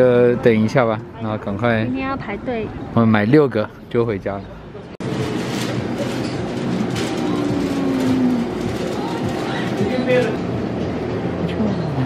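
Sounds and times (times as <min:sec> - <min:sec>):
shop rumble: 0:00.0 - 0:12.0.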